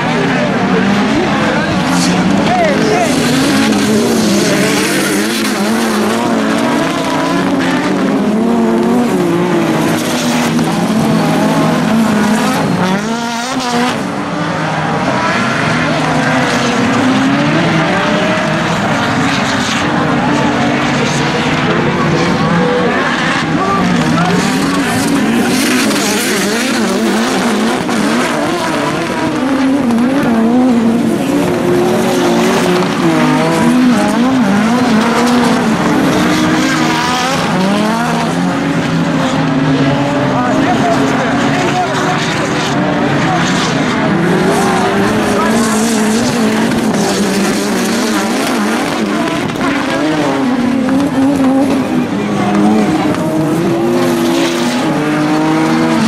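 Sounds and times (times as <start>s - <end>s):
racing car engines revving: 0.0s - 56.0s.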